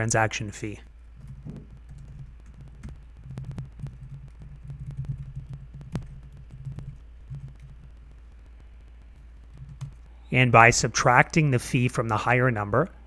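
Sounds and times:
steady low hum: 0.0 - 13.0
keyboard typing clicks: 1.2 - 10.1.

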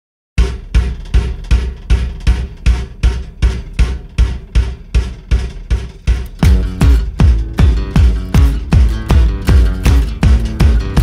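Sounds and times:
deep bass drum beat: 0.4 - 11.0.

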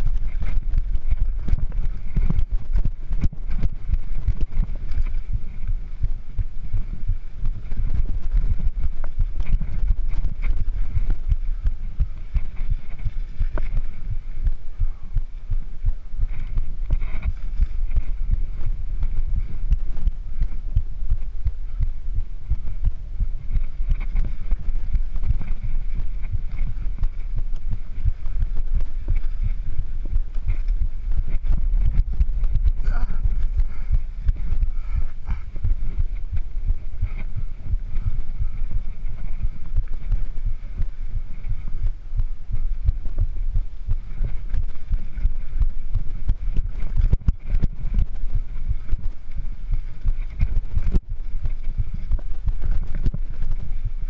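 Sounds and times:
bike thudding over bumps: 0.0 - 54.0
mountain bike rumbling over rough trail: 0.0 - 54.0.

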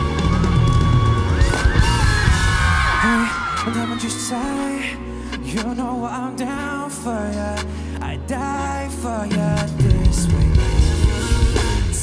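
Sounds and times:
live rock band music: 0.0 - 12.0.

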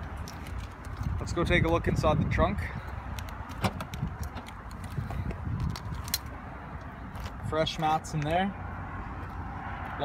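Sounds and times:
trunk lid clicks and knocks: 3.5 - 4.6.

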